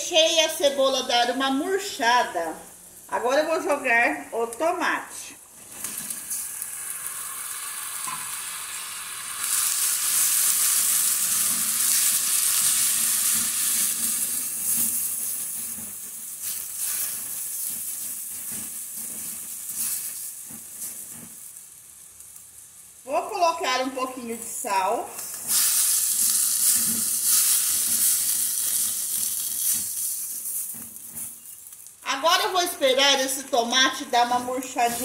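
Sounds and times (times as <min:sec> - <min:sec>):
vegetables sizzling in oil: 0:00.1 - 0:35.0.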